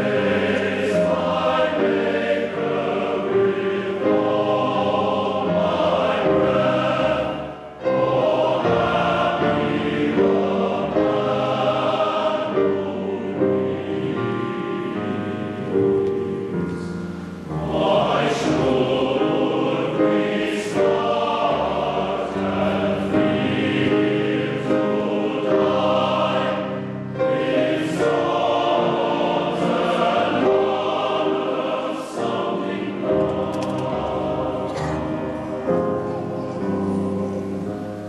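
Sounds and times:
men's choir singing: 0:00.0 - 0:38.0.

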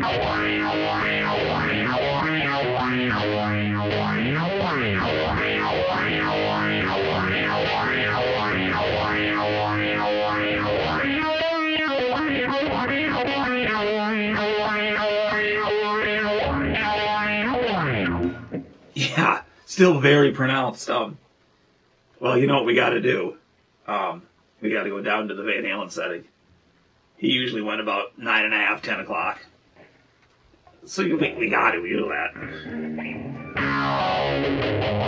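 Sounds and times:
distorted electric guitar with phaser: 0:00.0 - 0:18.8, 0:31.0 - 0:35.0.

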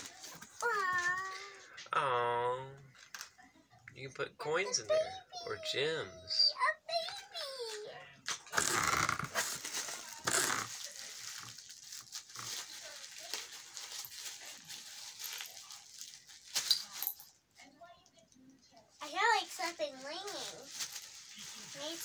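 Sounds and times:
tissue paper rustling: 0:00.0 - 0:01.6, 0:09.3 - 0:17.1, 0:19.0 - 0:22.0.

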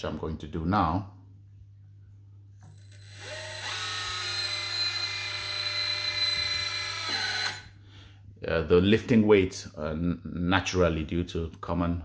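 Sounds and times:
hydraulic pump whining: 0:02.7 - 0:07.7.

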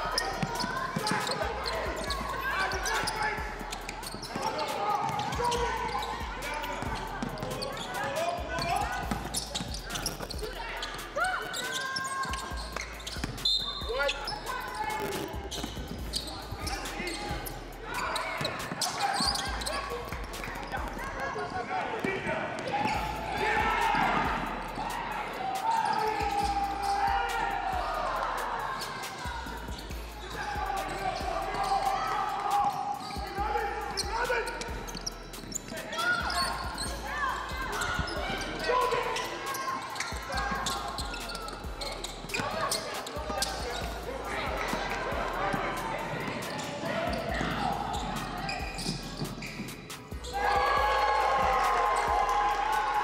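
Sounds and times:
voices calling out: 0:00.0 - 0:53.0.

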